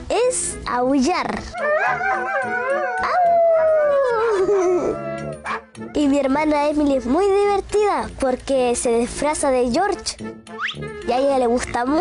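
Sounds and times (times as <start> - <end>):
cartoon dog howling: 1.6 - 5.5.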